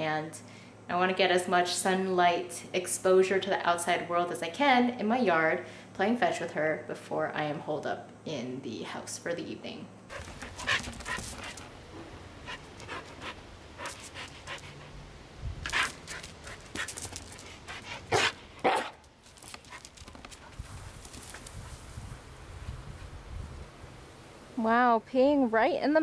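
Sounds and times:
dog panting: 0:10.1 - 0:11.7, 0:12.4 - 0:15.0, 0:15.7 - 0:18.4.

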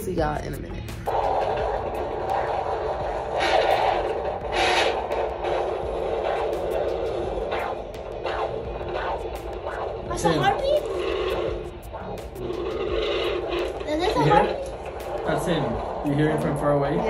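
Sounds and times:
doppler monitor hissing and scraping: 0:00.8 - 0:17.0
loud swishes: 0:01.1 - 0:17.0.

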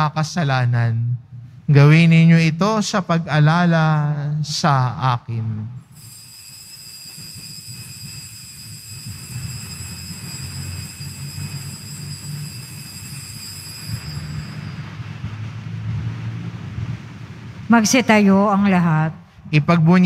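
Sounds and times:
high-pitched whine: 0:05.8 - 0:18.5
low background rumble: 0:13.9 - 0:20.0.

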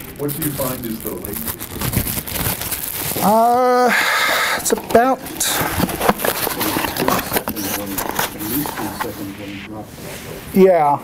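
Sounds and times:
man speaking quietly: 0:04.6 - 0:10.6.

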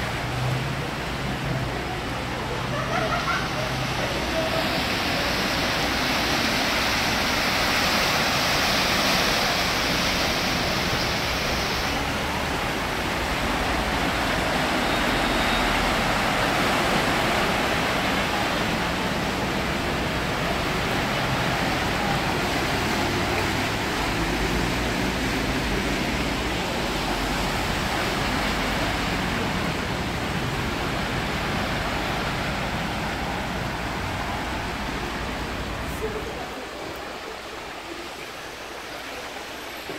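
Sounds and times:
cars splashing through water: 0:00.0 - 0:39.9
floodwater rushing: 0:00.0 - 0:39.9.

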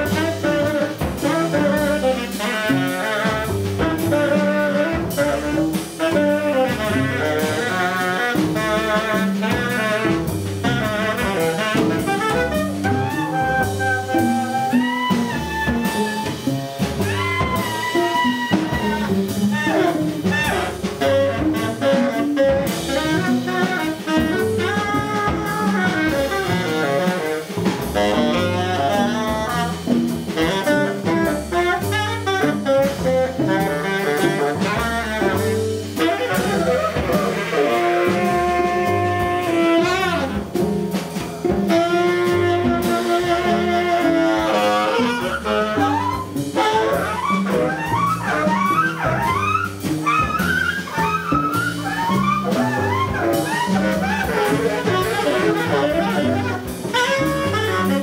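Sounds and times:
double bass: 0:00.0 - 0:58.0
drum kit: 0:00.0 - 0:58.0
saxophone: 0:00.0 - 0:58.0.

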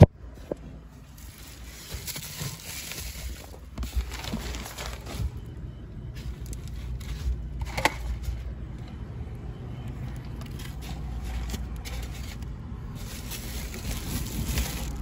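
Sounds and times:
car rumble: 0:00.0 - 0:15.0.

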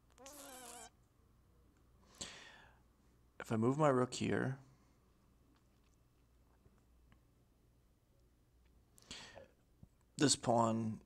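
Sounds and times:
cat meowing: 0:00.1 - 0:00.9.

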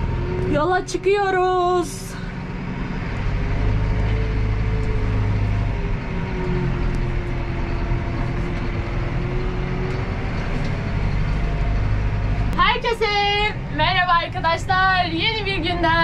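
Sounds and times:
tractor diesel engine running: 0:00.0 - 0:16.0.

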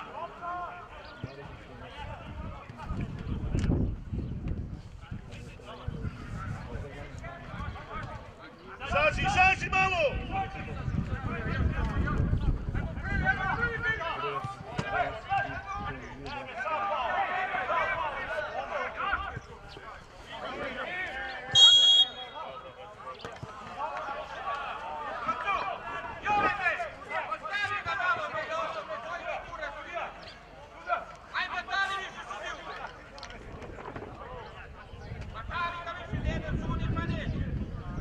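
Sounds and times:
referee's whistle blast: 0:21.5 - 0:22.5.

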